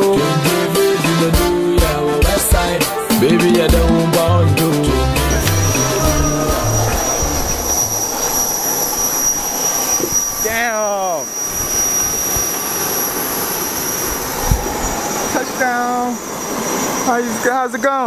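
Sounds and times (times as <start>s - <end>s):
background music: 0.0s - 8.2s
aircraft engines whining: 0.2s - 18.0s
constant rush: 5.2s - 18.0s.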